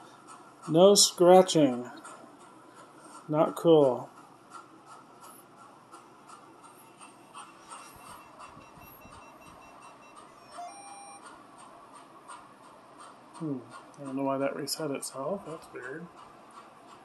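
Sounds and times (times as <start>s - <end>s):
thin high electronic tone: 7.8s - 11.2s
short electronic beep: 8.0s - 11.2s.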